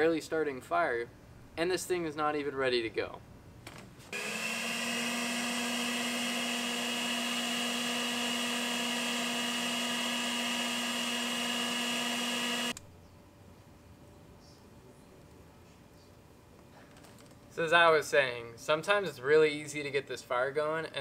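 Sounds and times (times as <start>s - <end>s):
electric leaf blower running: 4.2s - 12.8s.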